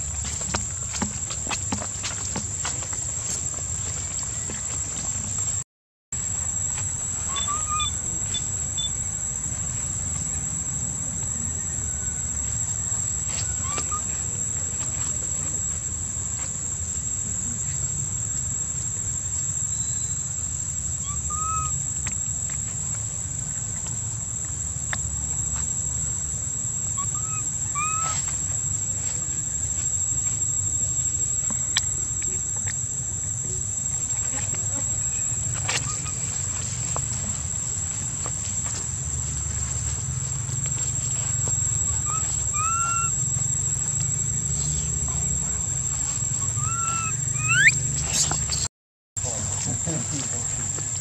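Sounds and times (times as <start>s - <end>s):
insects droning: 0.0s - 5.6s, 6.2s - 51.0s
short chirping calls: 7.2s - 9.0s, 20.9s - 21.8s, 27.0s - 28.2s, 41.6s - 43.7s, 46.2s - 48.7s.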